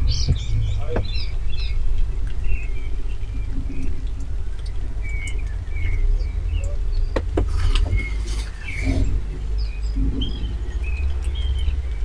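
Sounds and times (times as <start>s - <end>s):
small birds chirping: 0.0s - 12.0s
steady low rumble: 0.0s - 12.0s.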